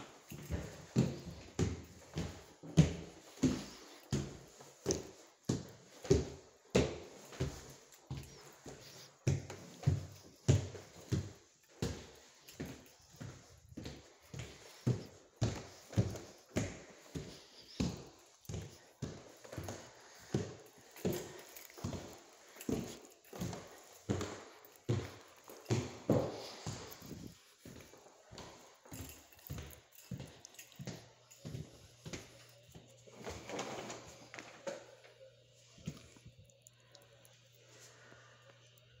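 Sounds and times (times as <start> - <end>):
footsteps on hard floor: 0.0 - 35.2.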